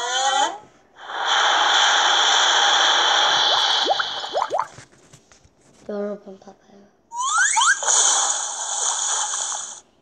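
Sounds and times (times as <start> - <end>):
rising whistle-like chirps: 7.2 - 7.9.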